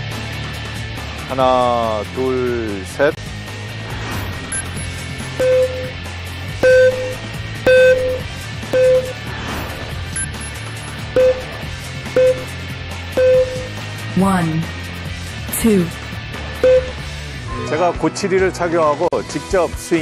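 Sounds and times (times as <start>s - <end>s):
background music: 0.0s - 20.0s
short electronic beeps: 4.5s - 6.0s, 6.6s - 9.2s, 10.2s - 10.5s, 11.2s - 11.6s, 12.2s - 12.5s, 13.2s - 13.7s, 16.6s - 17.0s
high electronic chirp: 4.6s - 5.9s, 6.6s - 9.2s, 12.2s - 12.5s, 13.2s - 13.7s.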